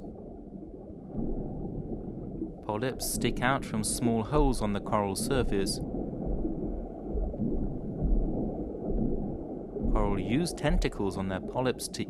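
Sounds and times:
low underwater rumbling: 0.0s - 11.9s.

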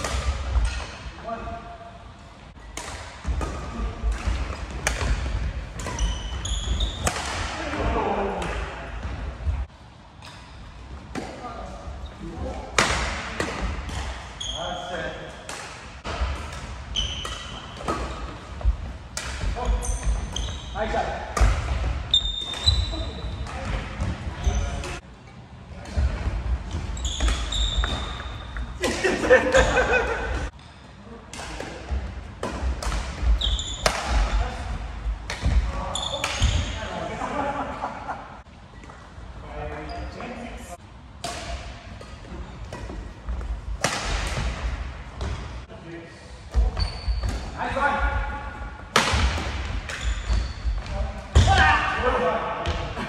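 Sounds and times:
racket hitting shuttlecock: 2.7s - 7.6s, 15.4s - 18.4s, 19.1s - 20.5s, 32.4s - 34.4s, 41.2s - 45.4s, 48.9s - 50.4s
shoe squeak: 5.8s - 7.1s, 14.4s - 15.0s, 16.9s - 17.8s, 19.6s - 21.0s, 22.1s - 23.4s, 26.8s - 28.7s, 33.4s - 33.9s, 35.8s - 36.8s, 46.6s - 47.5s, 49.9s - 51.0s.

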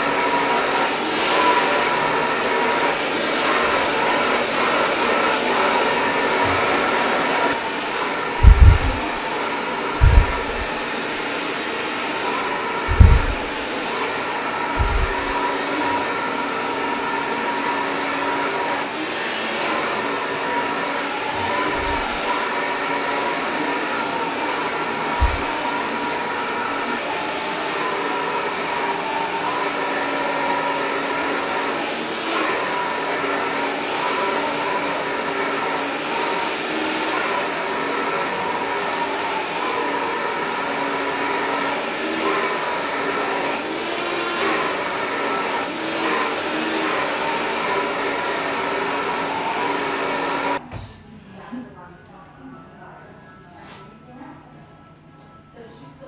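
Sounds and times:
hair dryer running: 0.0s - 50.6s
dull low knocks: 8.4s - 9.2s, 10.0s - 10.7s, 12.9s - 13.5s, 14.8s - 15.4s, 25.2s - 25.5s.

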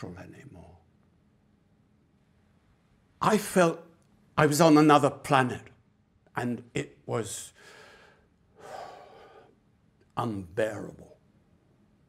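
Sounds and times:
man gasping breath: 7.6s - 9.6s.

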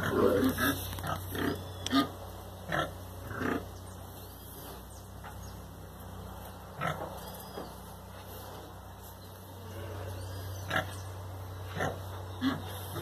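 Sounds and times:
pigs grunting: 0.0s - 5.4s, 6.4s - 8.8s, 9.6s - 13.0s.

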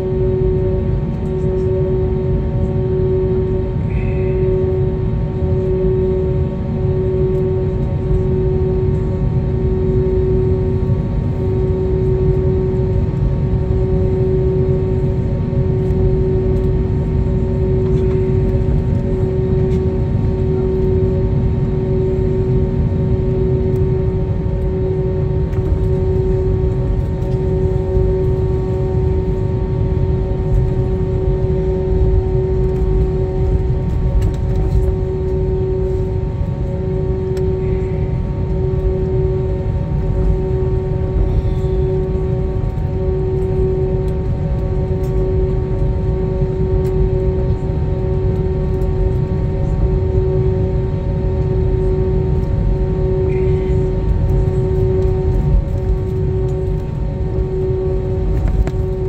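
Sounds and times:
aircraft engines idling rumble: 0.0s - 59.0s
steady cabin hums: 0.0s - 59.0s.

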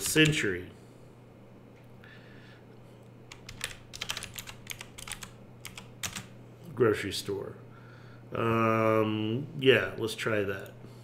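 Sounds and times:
faint steady low hum: 0.0s - 11.0s
computer keyboard typing: 3.3s - 6.4s.

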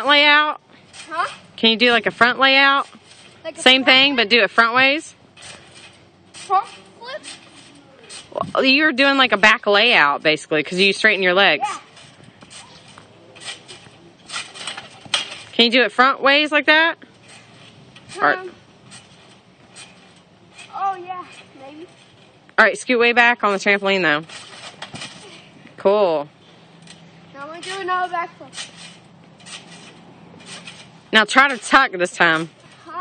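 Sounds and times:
trampoline thumps and springs: 0.0s - 26.2s, 26.8s - 33.0s.

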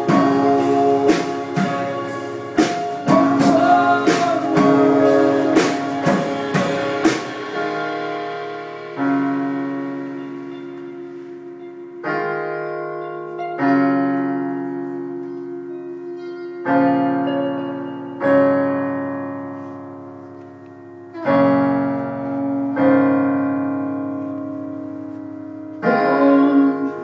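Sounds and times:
drum hits: 0.0s - 10.0s
electric guitar: 0.0s - 27.0s
keyboard piano chords: 0.0s - 27.0s.

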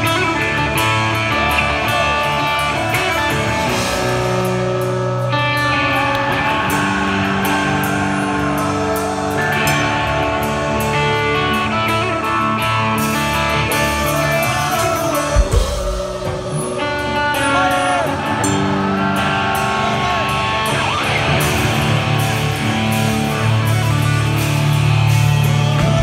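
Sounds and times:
hard rock band playing: 0.0s - 26.0s
person singing wavering notes: 11.4s - 22.0s.

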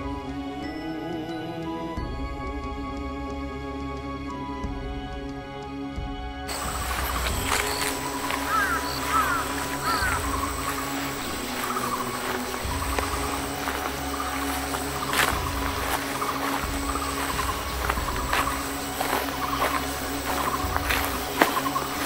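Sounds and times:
birds chirping: 6.5s - 22.0s
high insect drone: 6.5s - 22.0s.

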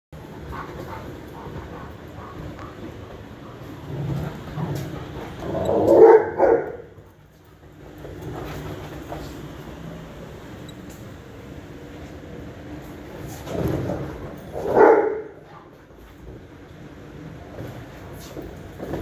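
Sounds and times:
dogs play-fighting: 0.2s - 10.9s, 12.1s - 19.0s
dog barking: 5.7s - 6.9s, 14.6s - 15.4s.

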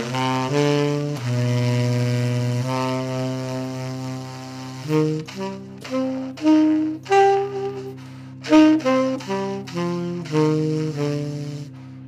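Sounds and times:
tenor saxophone ballad: 0.0s - 12.0s.

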